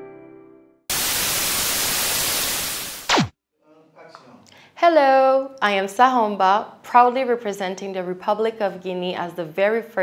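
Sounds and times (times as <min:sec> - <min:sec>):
piano music: 0:00.0 - 0:00.8
television static hiss: 0:00.9 - 0:03.2.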